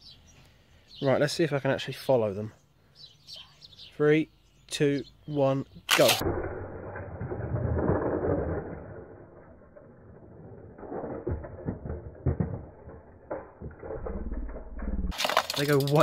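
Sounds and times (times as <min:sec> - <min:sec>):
toy cars rolling on plastic track: 0:07.2 - 0:16.0
light clicks and clatters: 0:15.1 - 0:16.0.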